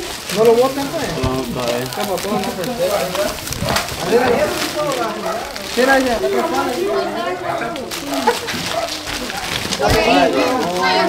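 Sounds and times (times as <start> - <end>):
people talking: 0.0 - 11.0
small dog barking: 5.0 - 5.6, 7.1 - 9.1.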